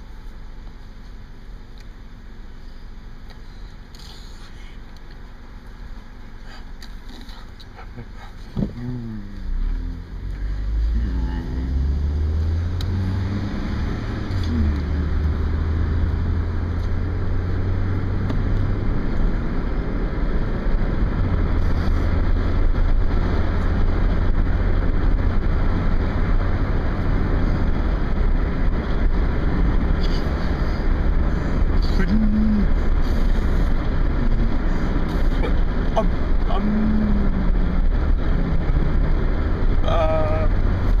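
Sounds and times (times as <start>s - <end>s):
car engine hum: 0.0s - 41.0s
road and wind noise: 0.0s - 41.0s.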